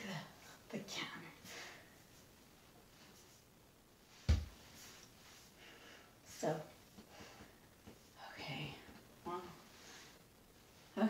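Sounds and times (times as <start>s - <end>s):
woman whispering: 0.0s - 1.4s, 8.2s - 9.6s.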